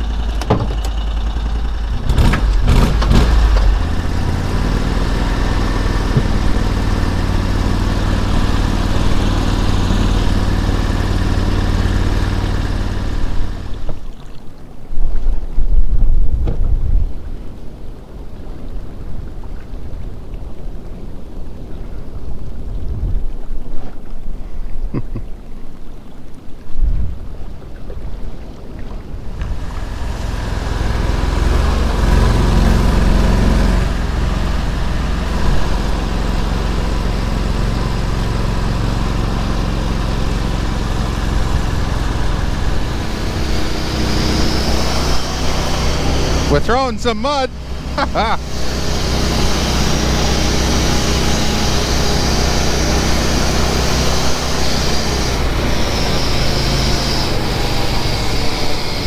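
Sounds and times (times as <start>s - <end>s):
vehicle engine running: 0.0s - 14.0s, 29.2s - 59.0s
water splashing: 0.0s - 58.9s
knocks: 0.4s - 0.9s.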